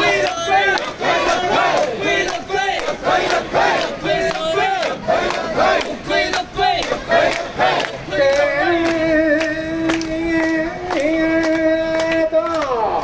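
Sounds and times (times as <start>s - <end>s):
group shouting rhythmic chant: 0.0s - 8.7s
dense crowd: 0.0s - 13.0s.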